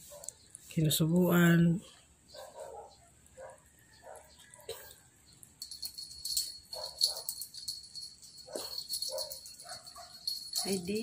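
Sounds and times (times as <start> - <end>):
high fluttering ringing tone: 5.6 - 11.0.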